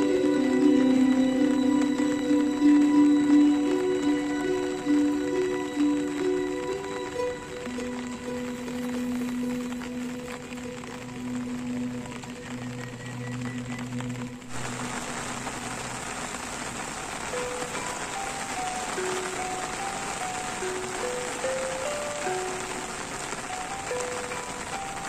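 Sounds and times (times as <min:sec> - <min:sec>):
gamelan music with held notes: 0:00.0 - 0:14.6, 0:17.2 - 0:25.0
heavy rain hiss: 0:00.0 - 0:25.0.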